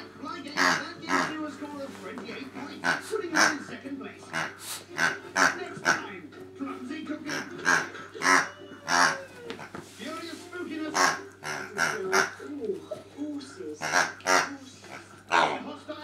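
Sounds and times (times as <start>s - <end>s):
squeaky toy squeaking: 0.5s - 1.5s, 2.6s - 6.2s, 7.2s - 9.8s, 10.8s - 12.4s, 13.8s - 15.6s.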